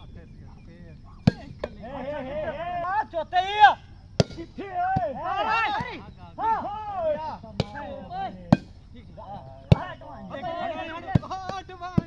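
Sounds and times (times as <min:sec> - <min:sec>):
players shouting: 0:00.9 - 0:12.0.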